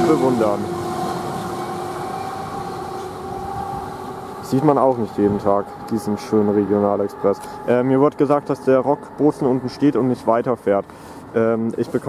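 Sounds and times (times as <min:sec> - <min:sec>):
train rumble: 0:00.0 - 0:10.9
electric locomotive whine: 0:00.0 - 0:11.4.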